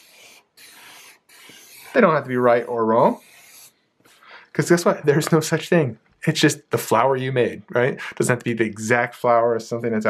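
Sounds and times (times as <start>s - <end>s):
felt-tip marker scratching on paper: 0.0s - 3.7s.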